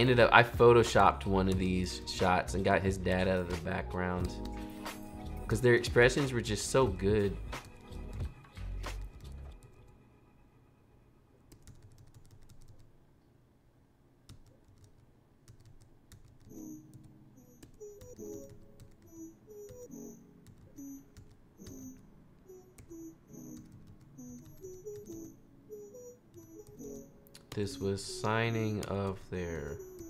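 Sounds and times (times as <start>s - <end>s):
soft plucked background music: 0.0s - 9.7s, 16.5s - 30.0s
computer keyboard keystrokes: 11.5s - 12.9s, 14.3s - 22.0s, 22.7s - 25.3s.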